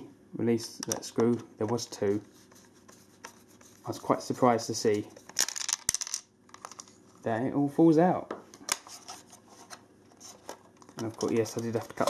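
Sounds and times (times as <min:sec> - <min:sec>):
plastic shell clicking and rattling: 0:05.3 - 0:06.9.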